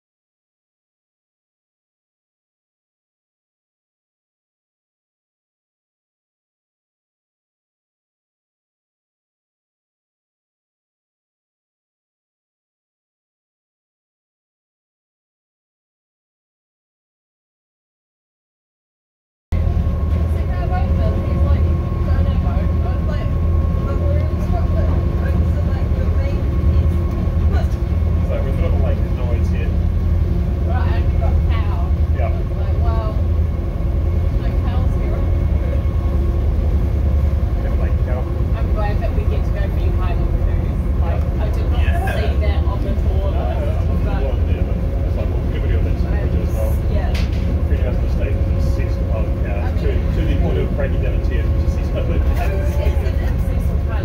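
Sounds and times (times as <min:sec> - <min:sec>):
boat engine droning: 0:19.5 - 0:54.0
voices chattering indistinctly: 0:20.2 - 0:29.8, 0:37.5 - 0:54.0.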